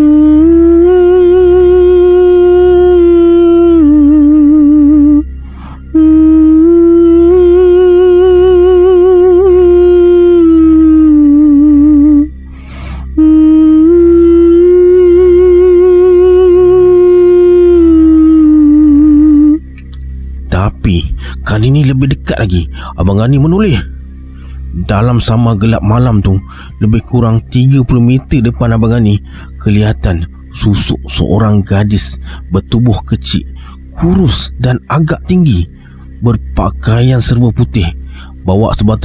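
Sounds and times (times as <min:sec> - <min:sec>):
woman singing wordlessly: 0:00.0 - 0:05.3, 0:06.0 - 0:12.3, 0:13.2 - 0:19.6
low drone: 0:00.0 - 0:39.0.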